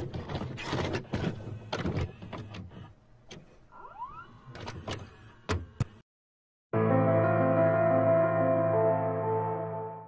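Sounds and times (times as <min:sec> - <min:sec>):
tape mechanism clicks and clunks: 0:00.0 - 0:06.0.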